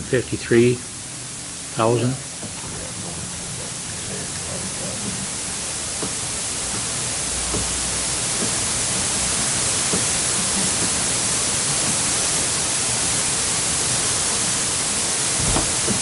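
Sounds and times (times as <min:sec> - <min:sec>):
background hiss: 0:00.0 - 0:16.0.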